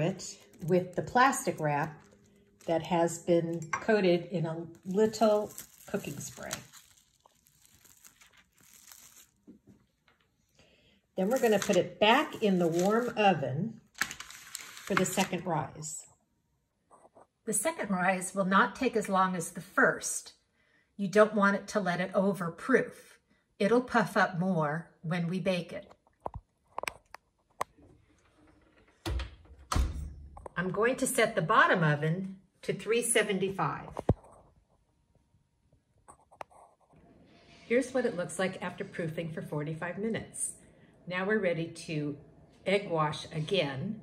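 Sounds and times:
plastic wrap crinkling: 0.0 - 3.3, 4.4 - 10.2, 11.2 - 13.2, 13.9 - 15.4
soft handling sounds: 4.5 - 10.5.

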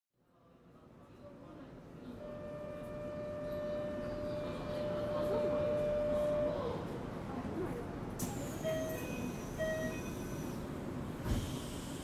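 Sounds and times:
train car low rumble: 0.7 - 12.0
short beeps: 8.6 - 10.6.

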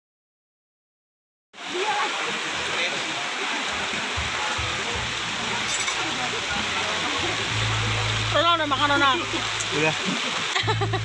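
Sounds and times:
crowd chatter: 1.6 - 10.2
dense steady hiss: 1.6 - 11.0.

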